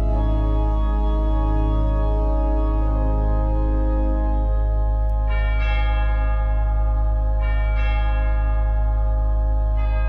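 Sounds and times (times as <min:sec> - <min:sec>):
church bells ringing: 0:00.0 - 0:10.0
steady deep drone: 0:00.0 - 0:10.0.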